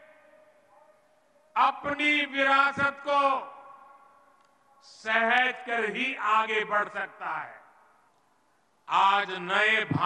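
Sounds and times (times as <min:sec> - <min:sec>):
man speaking over public address: 0:01.5 - 0:04.2, 0:04.8 - 0:07.9, 0:08.8 - 0:10.0.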